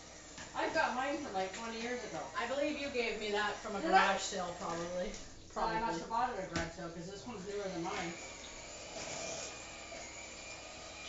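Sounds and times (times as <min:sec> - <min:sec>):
electric hand mixer whining: 0:00.0 - 0:11.0.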